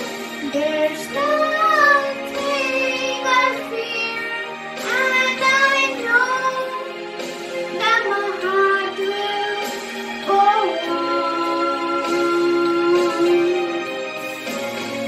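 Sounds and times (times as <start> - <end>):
instrumental backing track: 0.0 - 15.0
girl singing into a microphone: 0.4 - 6.9, 7.8 - 13.9.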